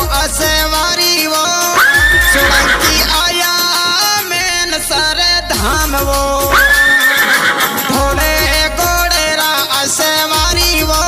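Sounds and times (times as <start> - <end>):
remixed devotional song: 0.0 - 11.0
horse whinny: 6.7 - 7.9.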